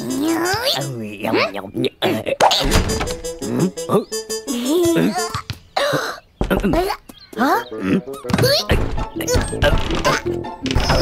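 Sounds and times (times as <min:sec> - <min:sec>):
squeaky character vocalisations: 0:00.0 - 0:05.5, 0:06.5 - 0:11.0
cartoon background music: 0:00.0 - 0:05.6, 0:06.5 - 0:11.0.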